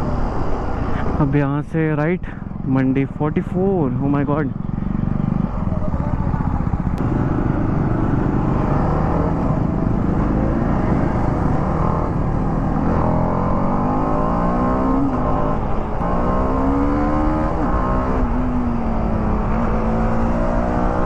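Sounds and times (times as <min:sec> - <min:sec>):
motorcycle engine accelerating: 0:00.0 - 0:21.0.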